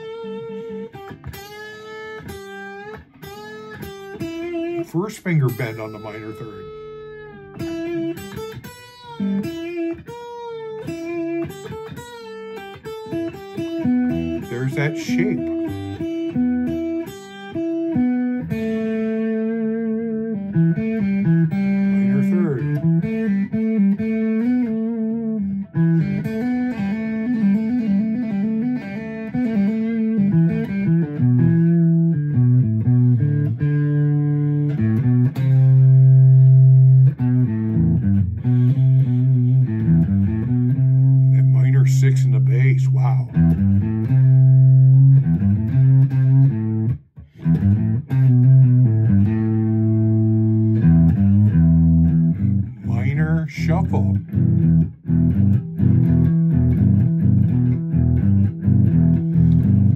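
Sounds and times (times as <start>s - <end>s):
electric guitar blues shuffle: 0.0s - 59.9s.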